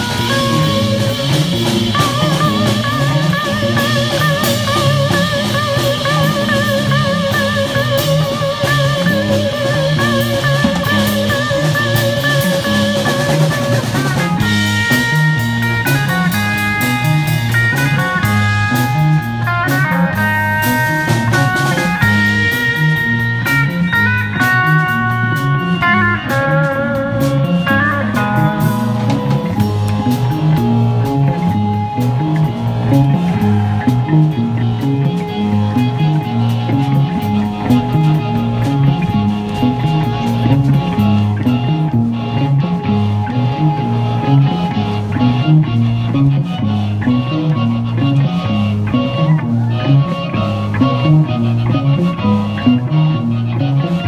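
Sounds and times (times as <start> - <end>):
drum kit: 0.0 - 54.0
electric bass: 0.0 - 54.0
electric guitar with effects: 0.0 - 54.0
keyboard: 0.0 - 54.0.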